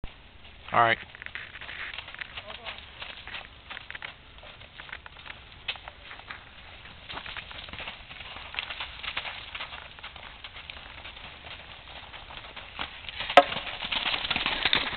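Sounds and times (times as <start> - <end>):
hoofbeats on sand: 0.4 - 14.9.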